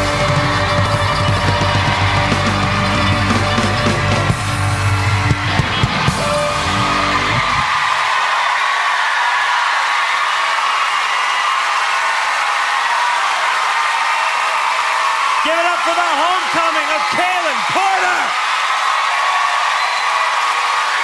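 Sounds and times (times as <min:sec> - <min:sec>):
live rock band playing: 0:00.0 - 0:07.6
audience cheering and applauding: 0:00.0 - 0:21.0.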